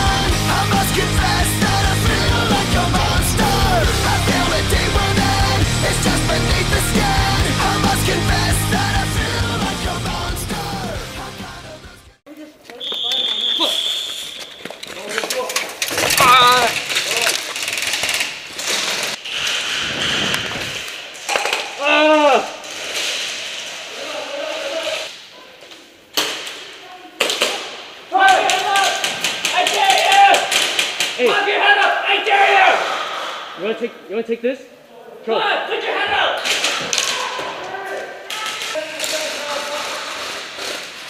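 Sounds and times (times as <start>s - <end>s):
rock song: 0.0s - 12.2s
players shouting: 28.1s - 33.2s.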